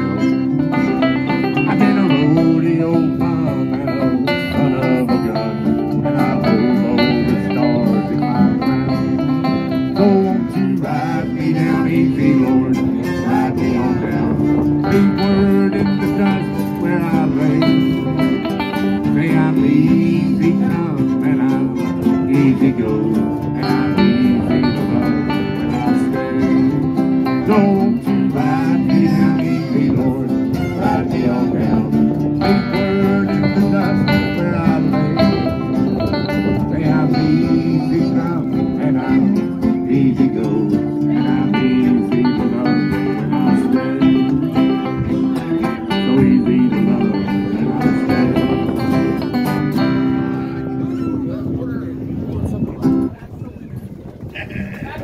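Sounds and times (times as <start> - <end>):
fiddle: 0.0 - 39.8, 40.4 - 55.0
banjo picking: 0.0 - 53.2
bluegrass string band: 0.0 - 55.0.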